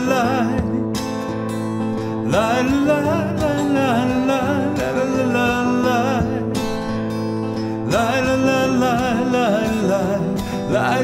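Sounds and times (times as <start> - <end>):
acoustic guitar chord ringing: 0.0 - 11.0
man singing: 0.0 - 11.0.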